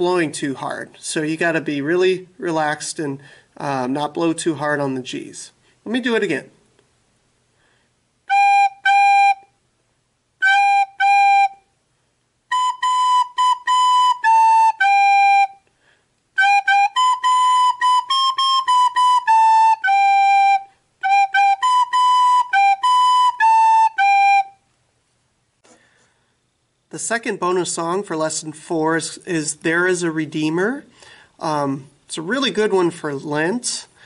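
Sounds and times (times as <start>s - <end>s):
soprano recorder melody: 8.3s - 9.6s, 10.4s - 11.7s, 12.5s - 15.7s, 16.4s - 24.7s.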